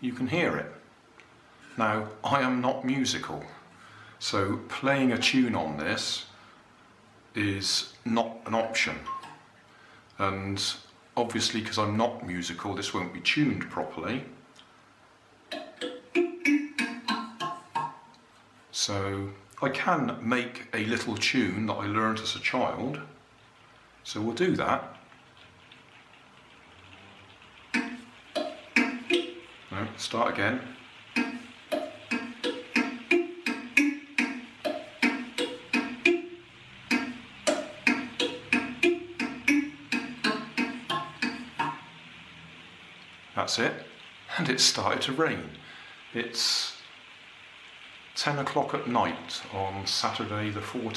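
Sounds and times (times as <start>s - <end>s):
thumb piano plucked notes: 15.5s - 18.1s, 27.7s - 29.6s, 31.1s - 42.0s.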